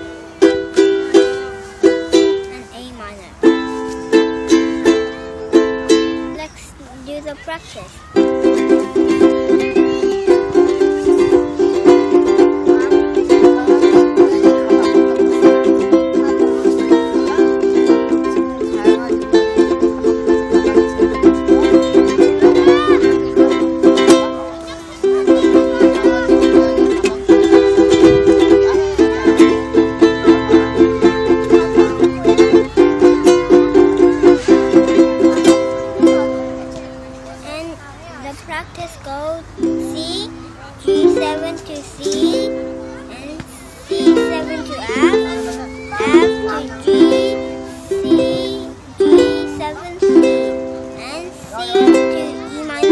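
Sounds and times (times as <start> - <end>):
ukulele strumming: 0.0 - 52.9.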